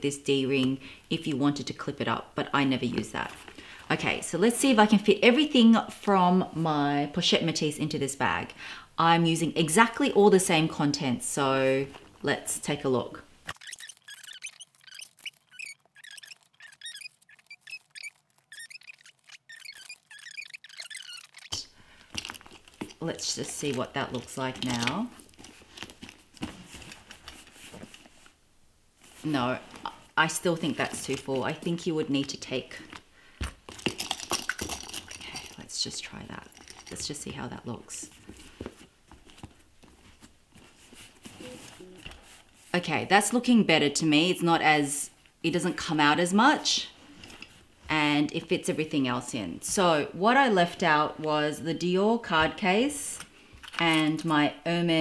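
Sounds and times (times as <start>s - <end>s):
leather handbag rubbing: 13.5s - 23.0s
items packed into a handbag: 19.5s - 28.0s, 30.6s - 37.4s.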